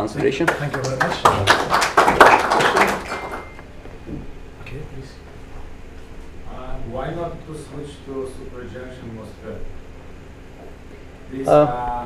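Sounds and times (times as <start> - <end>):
audience applause: 0.2 - 3.6.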